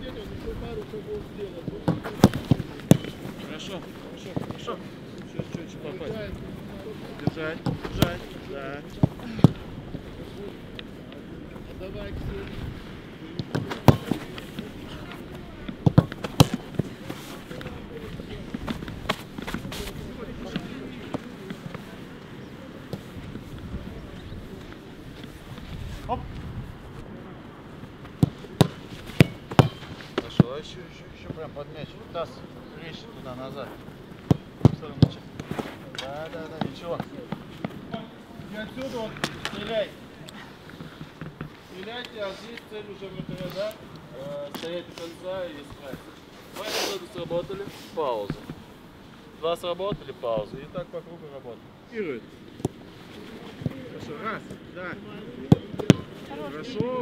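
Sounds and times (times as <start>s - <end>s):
faint background voices: 0.0s - 57.0s
low background noise: 0.0s - 57.0s
football being kicked: 1.8s - 3.2s, 13.4s - 14.6s, 15.7s - 17.1s, 28.1s - 30.5s, 34.2s - 35.2s, 55.4s - 56.1s.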